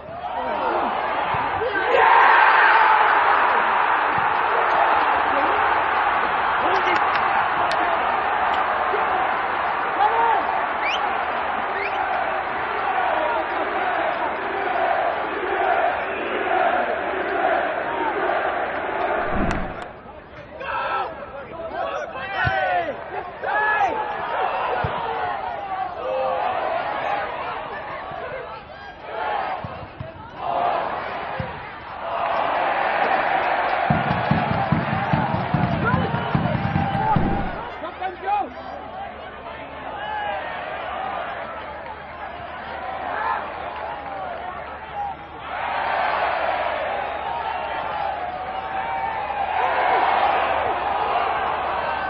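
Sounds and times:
stadium crowd roaring: 0.0 - 52.0
crowd chanting: 0.3 - 20.1, 29.1 - 37.8.

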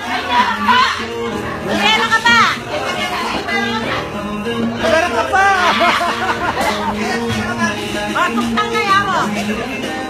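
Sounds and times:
excited high-pitched voices shouting: 0.0 - 3.2
background music: 0.0 - 10.0.

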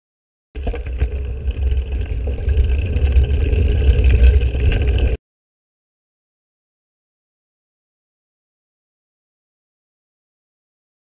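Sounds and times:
wind rumble on microphone: 0.6 - 5.2.

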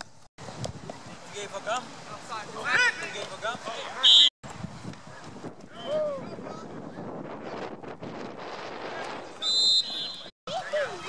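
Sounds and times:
outdoor field noise: 0.0 - 11.0
referee's whistle blast: 4.0 - 4.3, 9.4 - 10.3.

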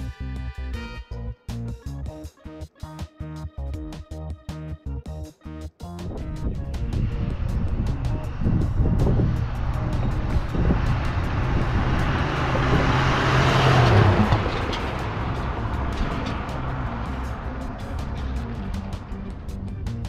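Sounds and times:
background music with beat: 0.0 - 20.0
pickup truck driving past: 6.2 - 20.0.

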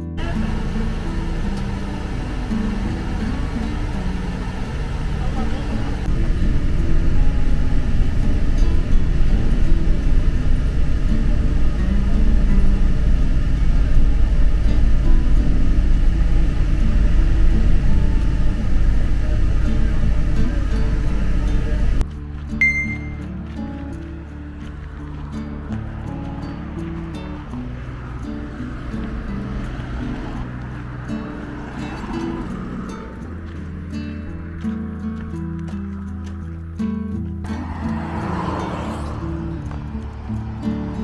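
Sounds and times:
minibus engine and road noise: 0.0 - 41.0
music: 0.0 - 41.0
voices: 0.0 - 41.0.

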